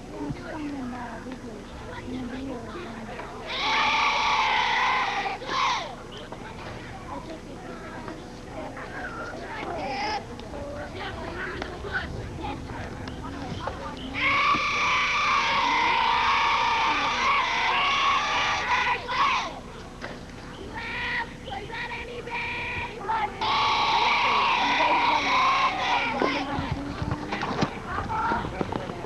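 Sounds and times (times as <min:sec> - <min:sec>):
children shouting: 0:03.4 - 0:06.0, 0:14.1 - 0:19.7, 0:20.7 - 0:26.9
children cheering: 0:03.5 - 0:06.0, 0:14.1 - 0:19.6, 0:23.2 - 0:26.7.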